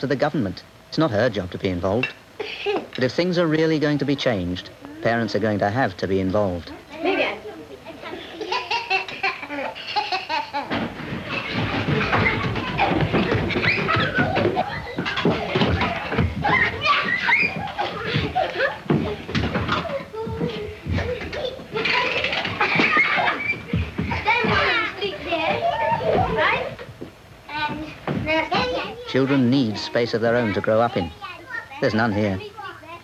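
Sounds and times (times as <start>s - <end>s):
young children laughing and shrieking: 7.9s - 26.9s
clattering knocks: 10.5s - 28.8s.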